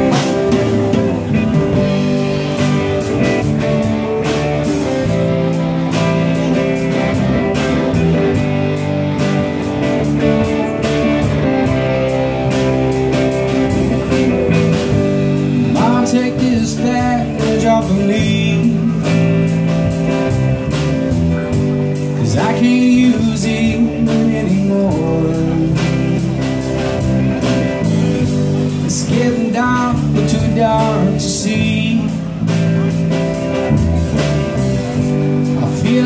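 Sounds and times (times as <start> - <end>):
drum kit steady beat: 0.0 - 36.0
electric bass: 0.0 - 36.0
electric guitars: 0.0 - 36.0
person singing: 15.6 - 19.6, 22.2 - 26.4, 28.8 - 32.4, 35.4 - 36.0.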